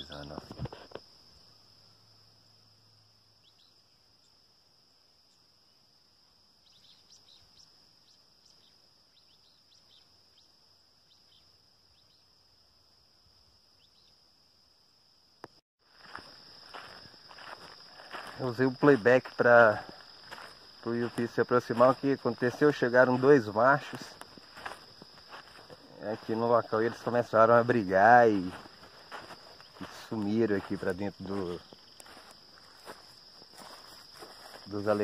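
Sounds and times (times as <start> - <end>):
high insect drone: 0.0 - 35.0.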